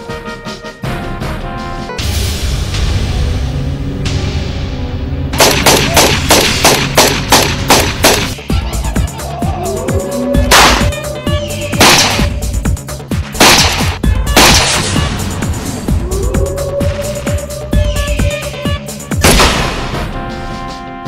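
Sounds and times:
background music: 0.0 - 21.0
gunshots: 5.4 - 8.4, 10.5 - 11.0, 11.8 - 12.4, 13.3 - 15.1, 19.2 - 20.1.

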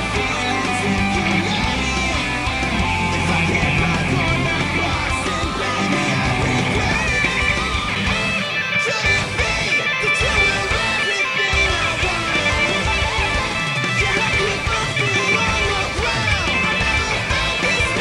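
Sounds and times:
distorted electric guitar lead: 0.0 - 18.0
metal band track: 0.0 - 18.0.

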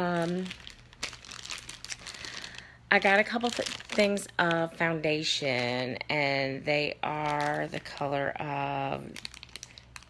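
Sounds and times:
packaging crinkling: 0.0 - 5.9, 7.1 - 10.0.

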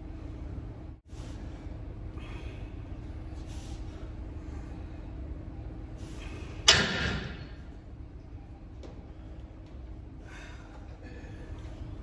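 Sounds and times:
low room hum: 0.0 - 12.0
faint breaths: 1.0 - 6.6, 8.6 - 12.0.

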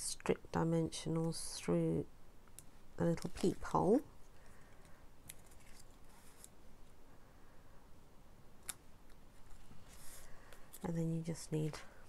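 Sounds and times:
paper rustling: 4.6 - 6.6.

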